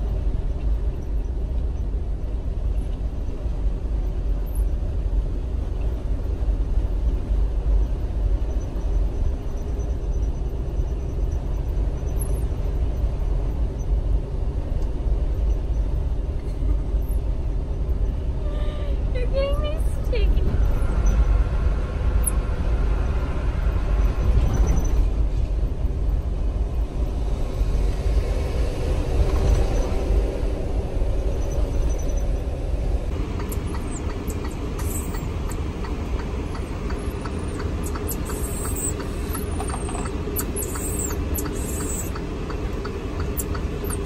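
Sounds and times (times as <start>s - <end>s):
road and engine rumble: 0.0s - 44.0s
wavering squeaks: 33.4s - 35.3s.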